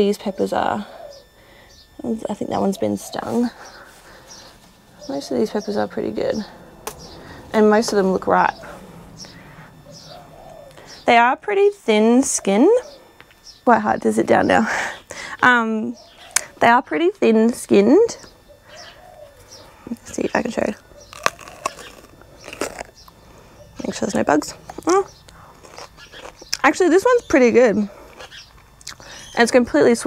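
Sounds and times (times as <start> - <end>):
bird cooing: 0.0 - 17.1, 17.8 - 29.6
high bird chirps: 3.5 - 11.2, 15.9 - 16.4, 18.2 - 23.9, 28.2 - 29.4
biting into raw pepper: 21.0 - 23.2, 24.7 - 26.6.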